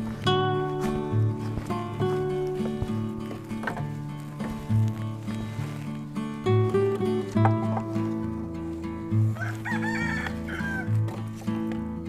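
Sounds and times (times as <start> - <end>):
background music with low beat: 0.0 - 12.0
rooster crowing: 9.3 - 11.0.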